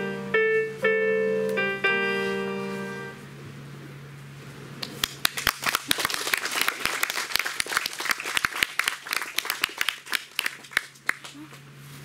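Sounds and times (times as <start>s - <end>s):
person clapping close by: 4.8s - 11.5s
small audience applauding: 4.8s - 11.6s.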